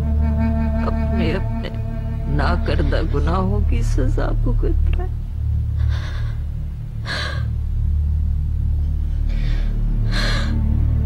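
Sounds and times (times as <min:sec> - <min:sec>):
low background music: 0:00.0 - 0:11.0.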